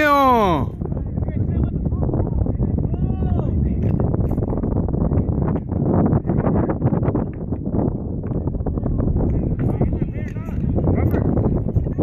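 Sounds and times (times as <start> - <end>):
man shouting: 0.0 - 0.7
wind buffeting microphone: 0.0 - 12.0.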